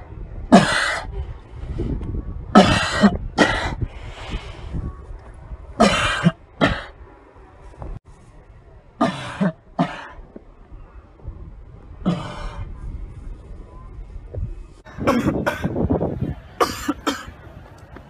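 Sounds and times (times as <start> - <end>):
person coughing hard: 2.6 - 3.8, 5.8 - 6.9, 15.0 - 15.7, 16.6 - 17.3.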